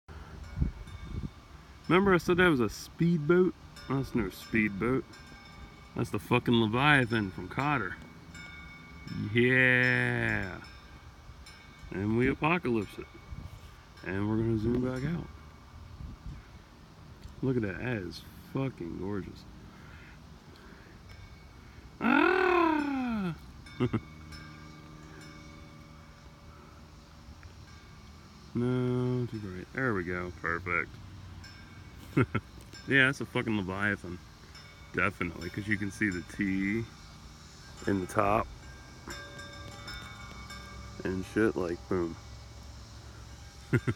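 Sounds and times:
steady low hum: 0.1s - 43.9s
small ticks: 23.4s - 28.6s, 38.6s - 41.0s.

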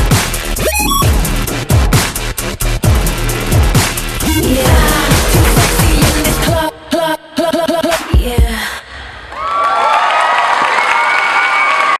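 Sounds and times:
applause: 9.3s - 11.9s
audience cheering and screaming: 9.3s - 11.9s.

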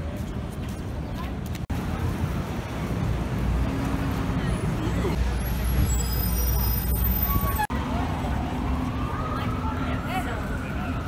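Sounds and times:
pedestrians chattering: 0.0s - 11.0s
traffic rumble: 0.0s - 11.0s.

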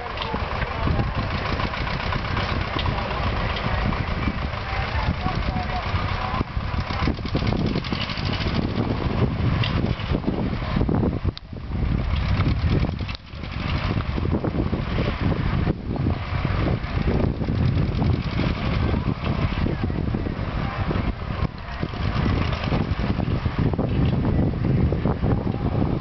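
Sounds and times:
tractor engine running: 0.0s - 26.0s.

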